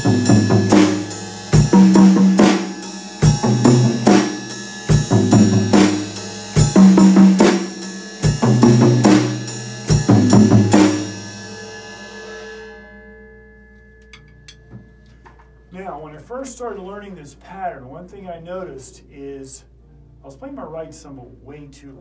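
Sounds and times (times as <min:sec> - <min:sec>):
drum kit groove: 0:00.0 - 0:11.7
cymbals ringing: 0:00.0 - 0:15.9.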